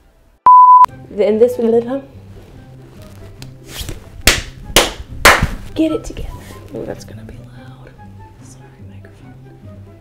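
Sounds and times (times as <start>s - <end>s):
light background music: 0.0s - 10.0s
loud hand claps: 4.3s - 5.6s.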